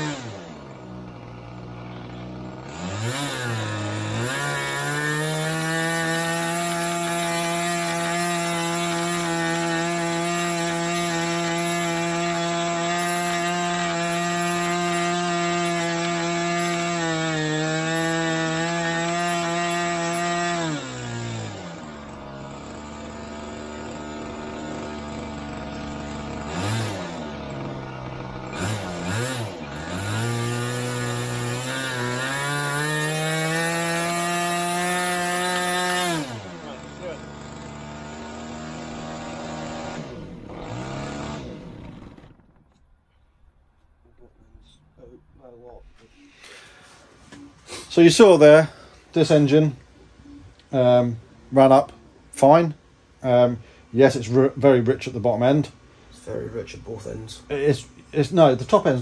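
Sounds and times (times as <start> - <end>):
model aircraft engine revving: 0.0 - 42.8.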